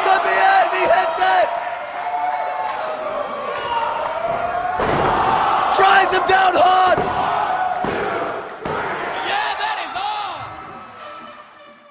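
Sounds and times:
crowd yelling: 0:00.0 - 0:11.6.

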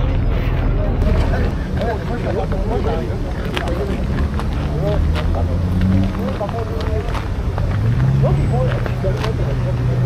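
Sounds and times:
car engine humming: 0:00.0 - 0:10.0
people talking: 0:00.0 - 0:10.0.

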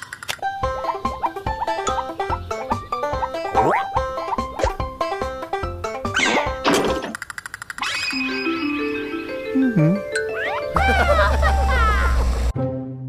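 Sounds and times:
plucked cartoon music: 0:00.4 - 0:07.1, 0:07.8 - 0:13.0.

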